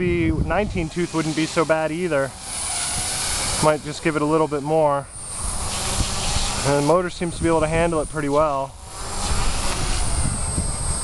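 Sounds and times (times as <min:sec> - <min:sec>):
wind rumble on microphone: 0:00.0 - 0:01.1, 0:05.4 - 0:11.0
faint high motor whine: 0:00.0 - 0:11.0
helicopter rotor rushing: 0:00.0 - 0:11.0.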